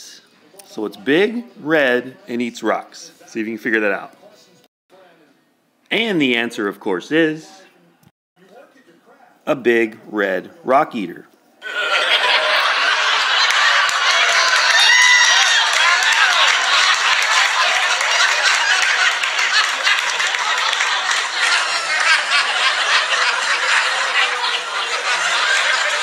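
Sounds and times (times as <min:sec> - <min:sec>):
crowd laughing: 0:11.6 - 0:26.0
scattered clapping: 0:13.0 - 0:26.0.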